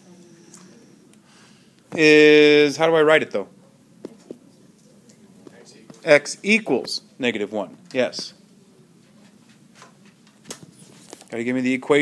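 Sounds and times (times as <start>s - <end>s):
faint voices answering: 0.0s - 2.1s.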